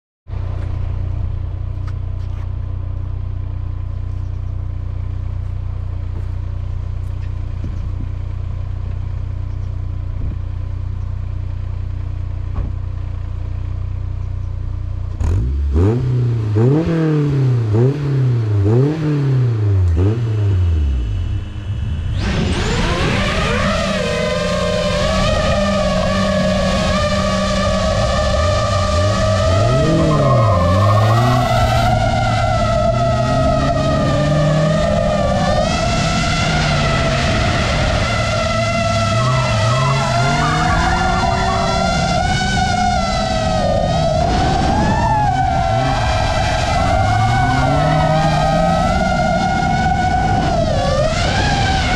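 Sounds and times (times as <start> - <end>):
car engine idling and revving: 0.3 - 51.9
drone motors whining: 19.9 - 51.9.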